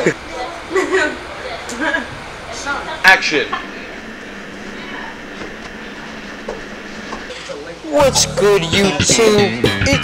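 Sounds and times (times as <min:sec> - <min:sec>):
faint murmured voices: 0:00.0 - 0:09.6.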